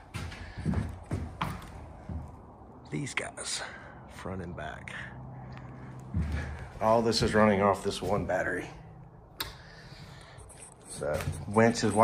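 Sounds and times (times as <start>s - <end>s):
footsteps on trailer floor: 0.0s - 2.6s, 6.0s - 8.6s.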